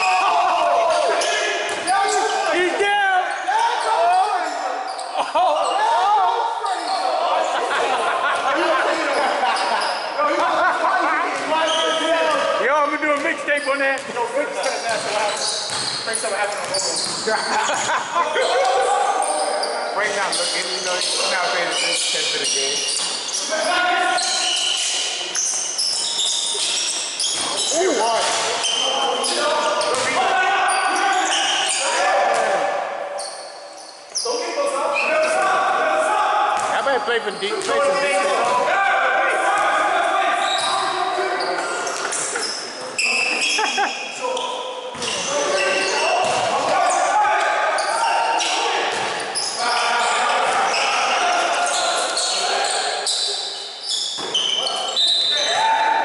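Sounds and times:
players shouting: 0.0 - 13.5, 14.6 - 33.3, 34.3 - 41.9, 45.0 - 53.5
basketball bouncing on court floor: 14.9 - 17.3, 29.9 - 30.2, 46.2 - 46.6.

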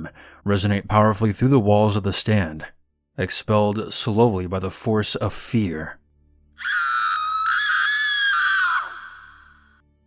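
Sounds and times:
high-pitched human scream: 6.6 - 9.8.

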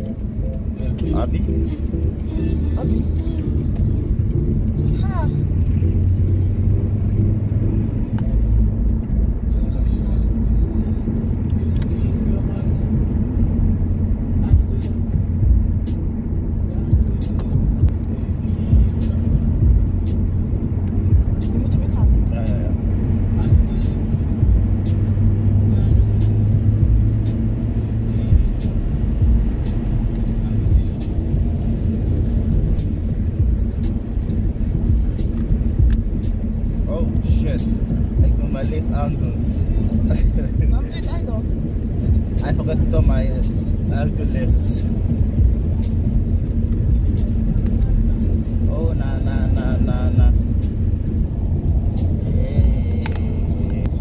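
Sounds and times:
car engine and tyre rumble: 0.0 - 54.0.

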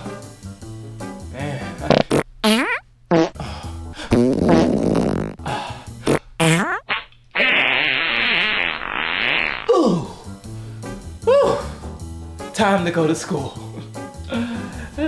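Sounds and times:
background music: 0.0 - 6.5, 9.6 - 15.0
farts: 1.9 - 3.4, 4.1 - 5.4, 6.0 - 9.7.

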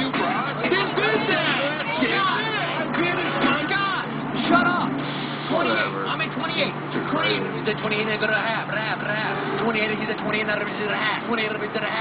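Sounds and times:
television voices: 0.0 - 12.0.

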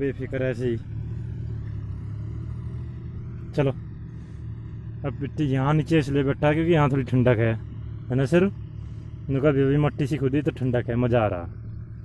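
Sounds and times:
tractor engine droning: 0.0 - 12.0.

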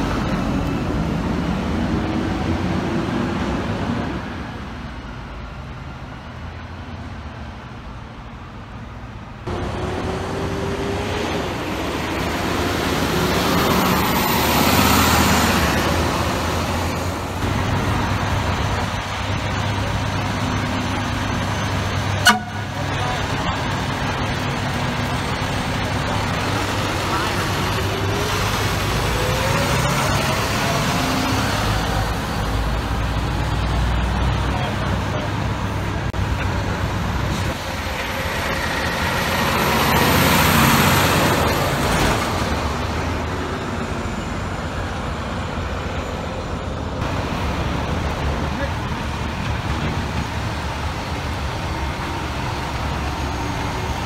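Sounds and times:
diesel engines running: 0.0 - 54.0
traffic noise: 0.0 - 54.0.

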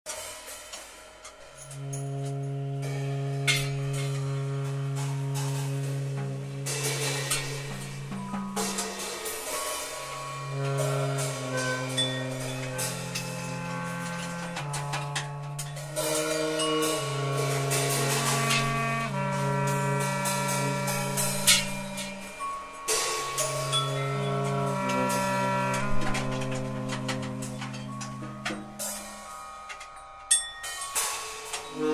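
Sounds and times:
drum and cymbal strikes: 0.1 - 31.9
tenor saxophone: 1.5 - 29.6, 31.6 - 31.9
clarinet: 1.5 - 30.4, 31.5 - 31.9.

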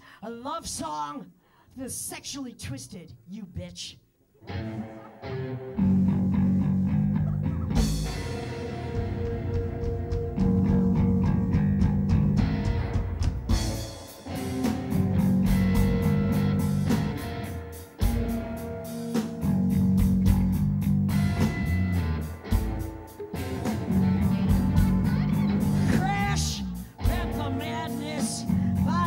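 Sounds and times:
electric bass guitar riff: 4.4 - 29.0
electric guitar: 4.4 - 29.0
drum and cymbal hits: 7.8 - 28.9.

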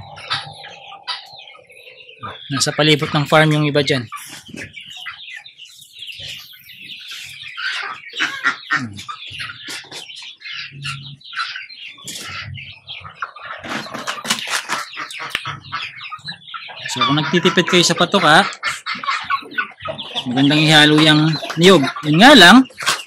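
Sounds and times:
hens clucking and calling: 0.0 - 23.0.

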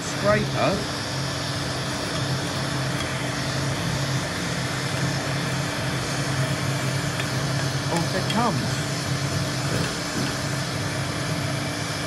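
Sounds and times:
heat gun running: 0.0 - 12.0.

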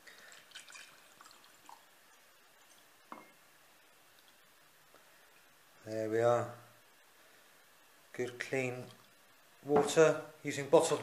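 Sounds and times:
water trickling into a glass jar: 0.0 - 3.4.

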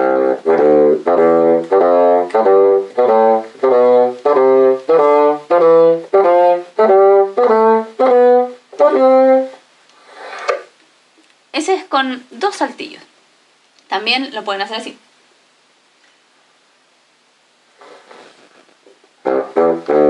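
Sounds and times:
bassoon playing scale: 0.0 - 9.6, 19.2 - 20.0.

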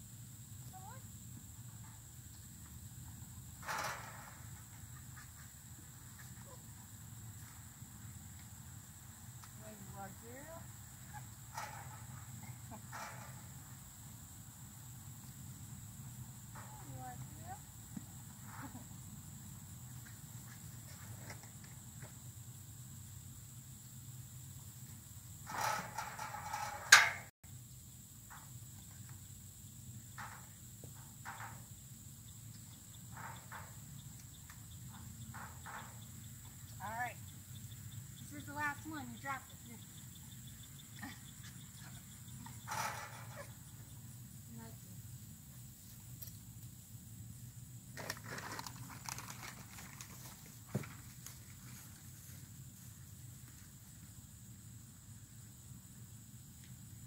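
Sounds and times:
high insect drone: 0.0 - 57.0
sharp knock on metal gate: 25.5 - 27.3.

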